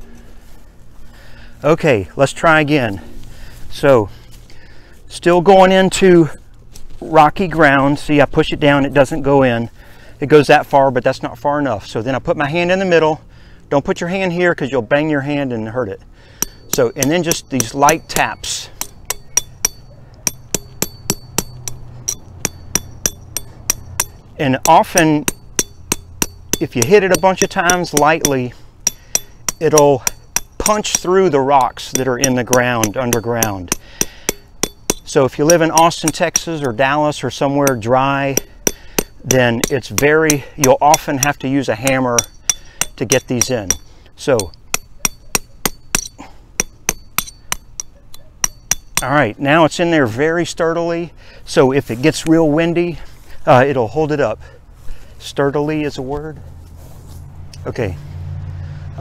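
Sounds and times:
hammer tapping on steel wire: 0:16.4 - 0:49.2.

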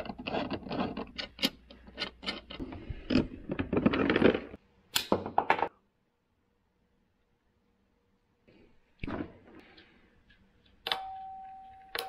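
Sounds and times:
cables and parts handled: 0:00.0 - 0:04.6.

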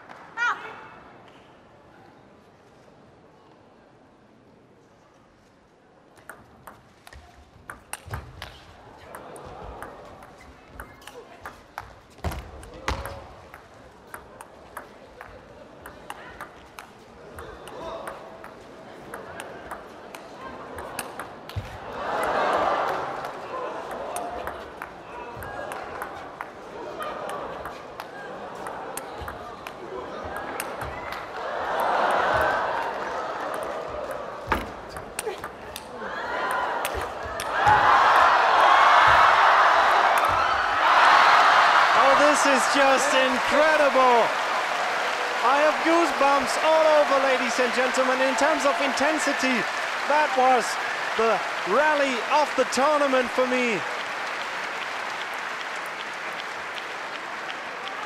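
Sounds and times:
crowd shouting: 0:31.4 - 0:34.5, 0:36.0 - 0:53.8.

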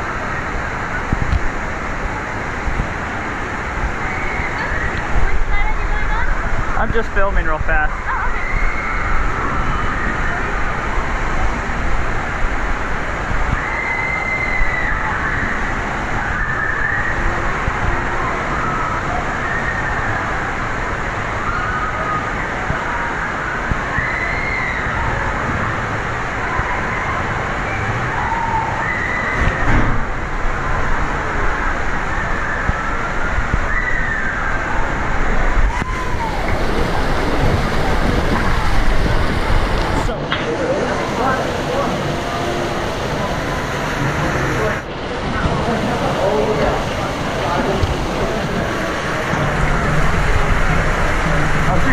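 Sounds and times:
rushing water: 0:00.0 - 0:51.9.

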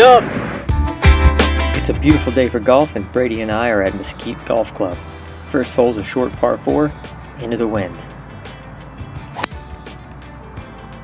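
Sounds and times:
background music: 0:00.3 - 0:11.0
golf club striking ball: 0:09.3 - 0:09.8.

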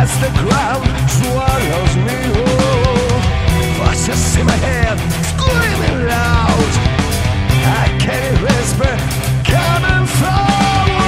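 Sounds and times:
power metal music: 0:00.0 - 0:11.0.

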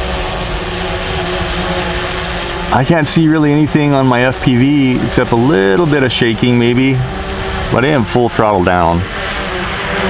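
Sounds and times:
drone motors humming: 0:00.0 - 0:10.0.

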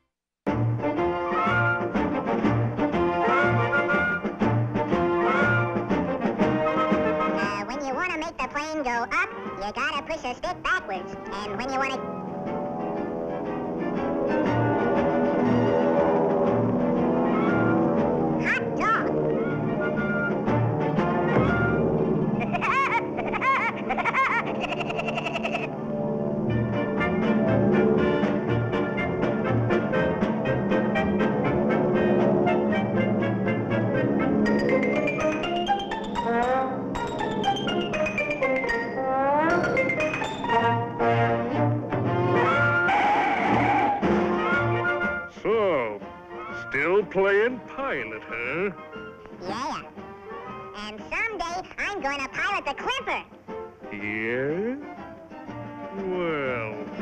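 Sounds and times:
orchestral cartoon music with brass: 0:00.5 - 0:24.6, 0:25.6 - 0:51.8, 0:52.4 - 0:57.0.

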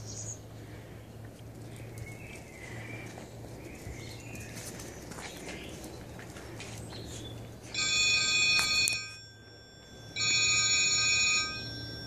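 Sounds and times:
electronic phone ringing tone: 0:07.7 - 0:12.0.

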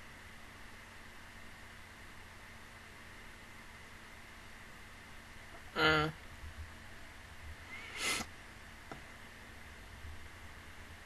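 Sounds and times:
faint room hiss: 0:00.0 - 0:11.0
woman voicing mm: 0:05.7 - 0:06.2.

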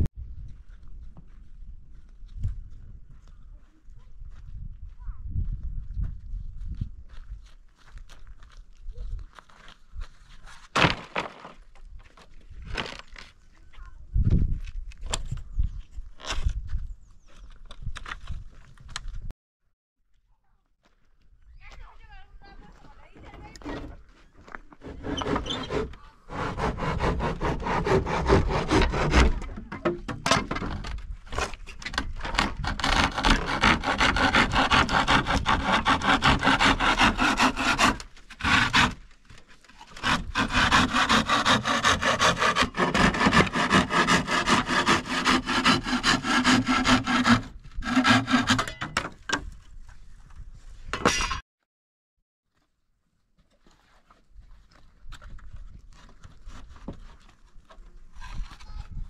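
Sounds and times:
hand saw cutting wood: 0:24.8 - 0:39.0, 0:39.8 - 0:49.0.

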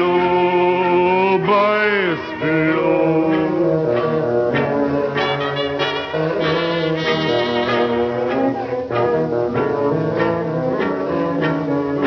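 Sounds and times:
band playing: 0:00.0 - 0:12.0.

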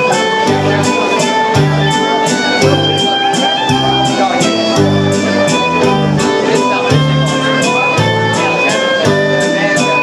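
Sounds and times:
electric guitar: 0:00.0 - 0:10.0
folk dance tune on fiddle: 0:00.0 - 0:10.0
keyboard: 0:00.0 - 0:10.0
steady beat: 0:00.0 - 0:10.0.

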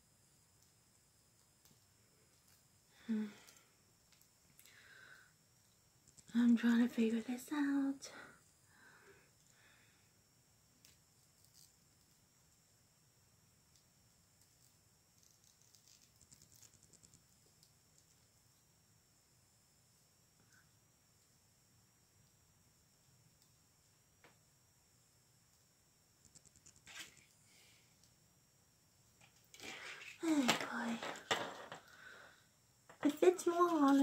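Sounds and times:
faint high whine: 0:00.0 - 0:34.0.

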